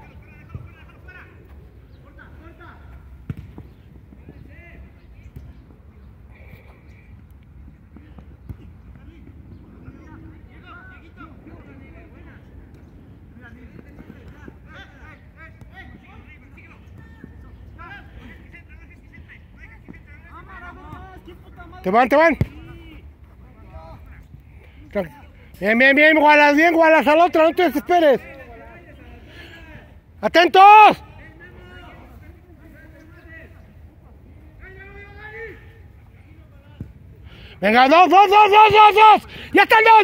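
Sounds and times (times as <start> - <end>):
ball being kicked: 3.2 - 3.8
distant players shouting: 13.4 - 24.2, 24.8 - 33.6, 37.6 - 40.0.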